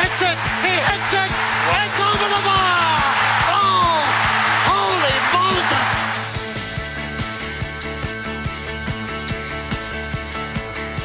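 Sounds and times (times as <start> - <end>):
people shouting: 0.0 - 6.3
crowd cheering: 0.0 - 7.6
theme music with steady beat: 0.0 - 11.0.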